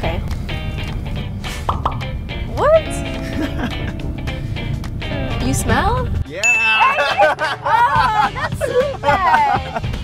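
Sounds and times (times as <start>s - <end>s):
background music: 0.0s - 10.0s
springy boing effect: 2.6s - 7.3s.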